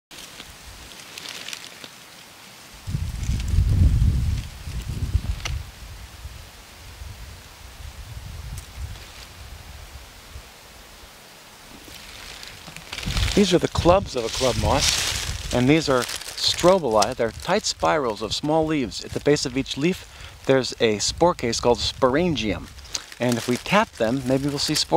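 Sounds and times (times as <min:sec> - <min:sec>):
low rumble in gusts: 0:02.8 - 0:10.5, 0:11.8 - 0:22.9
faint rustling: 0:11.6 - 0:20.6.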